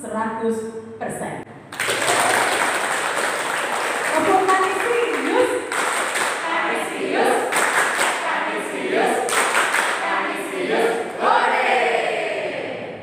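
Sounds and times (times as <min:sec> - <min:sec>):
children chanting a cheer: 0:06.4 - 0:13.0.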